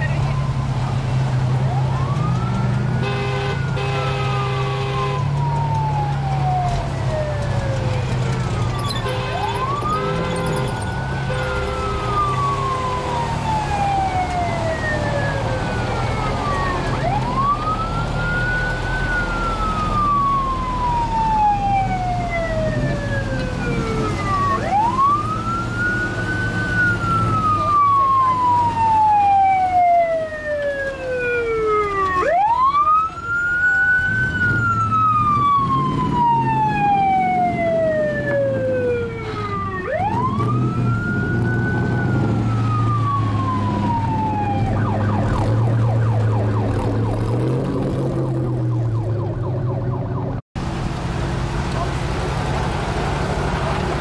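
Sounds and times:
truck engines running: 0:00.0 - 0:54.0
siren wailing: 0:01.6 - 0:50.4.

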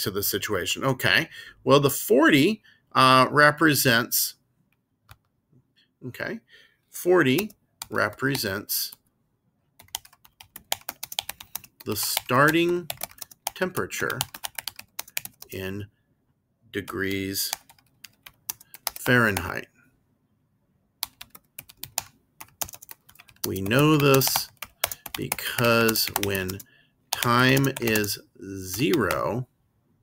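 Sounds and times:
keyboard typing clicks: 0:12.9 - 0:13.6, 0:21.0 - 0:28.1.

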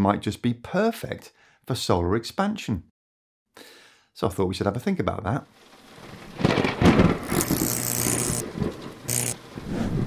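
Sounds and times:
thunder-like rumble: 0:06.0 - 0:07.3, 0:08.4 - 0:10.0.

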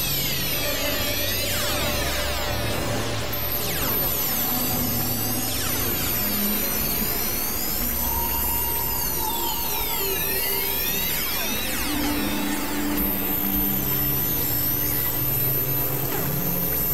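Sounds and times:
experimental electronic music: 0:00.0 - 0:16.9.

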